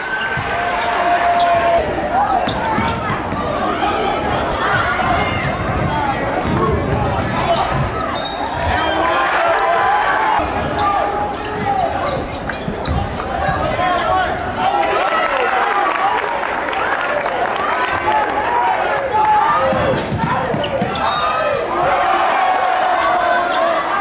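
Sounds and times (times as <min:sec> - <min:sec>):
crowd and players shouting: 0:00.0 - 0:24.0
basketball bouncing on wooden court: 0:05.0 - 0:07.9.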